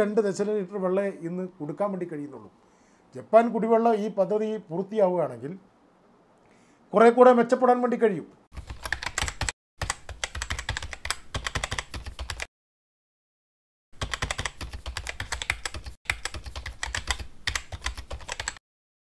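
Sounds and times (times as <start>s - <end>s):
computer keyboard typing: 8.6s - 12.5s, 14.0s - 18.6s.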